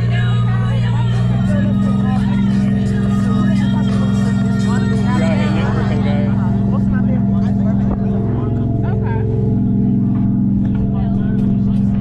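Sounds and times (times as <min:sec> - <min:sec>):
boat engine droning: 0:00.0 - 0:12.0
passengers chatting: 0:00.0 - 0:12.0.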